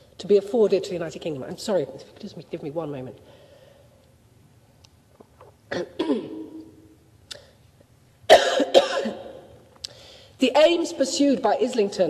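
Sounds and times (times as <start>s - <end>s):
woman coughing: 5.7s - 6.6s, 8.3s - 9.4s.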